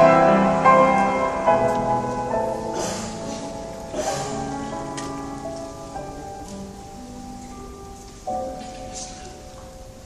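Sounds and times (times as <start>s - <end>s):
piano chord struck: 0.0s - 10.0s
piano playing held notes: 0.0s - 10.0s.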